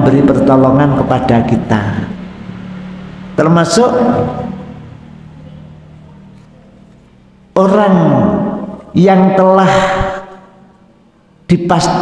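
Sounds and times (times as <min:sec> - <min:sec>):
man's voice: 0:00.0 - 0:02.2, 0:07.6 - 0:10.5, 0:11.5 - 0:12.0
low steady hum: 0:00.0 - 0:12.0.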